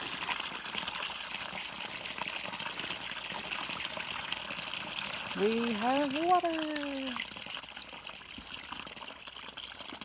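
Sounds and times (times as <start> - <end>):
water gushing from a pipe: 0.0 - 10.0
water splashing into a trough: 0.0 - 10.0.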